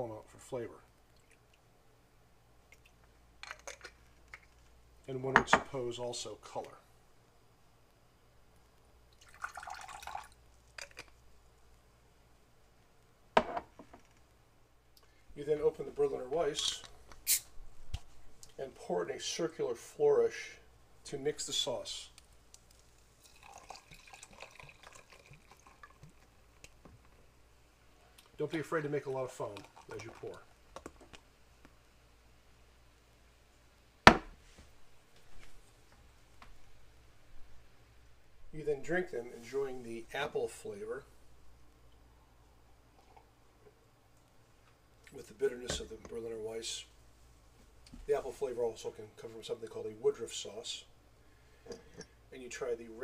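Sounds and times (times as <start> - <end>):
beer pouring into a glass: 9.1 - 11.2, 23.2 - 26.8, 28.6 - 31.0, 42.7 - 43.4
beer fizzing: 9.1 - 11.6, 21.1 - 27.2, 28.2 - 31.2.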